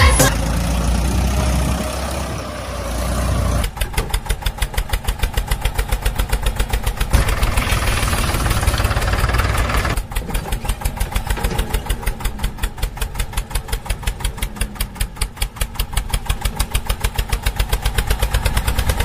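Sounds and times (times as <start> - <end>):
small tractor engine running: 0.0 - 19.0.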